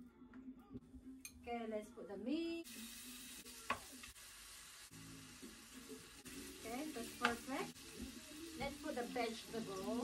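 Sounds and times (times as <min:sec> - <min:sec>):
beef sizzling in a pot: 0:02.6 - 0:10.0.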